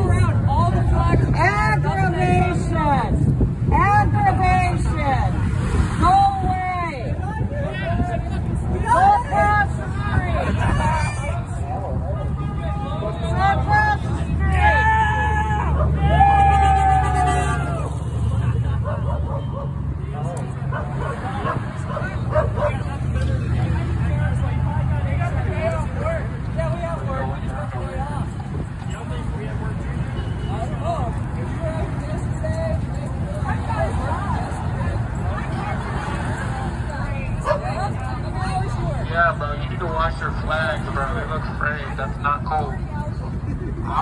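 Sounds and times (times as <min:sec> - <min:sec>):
raised voices: 0:06.0 - 0:28.4
people shouting: 0:08.8 - 0:18.3.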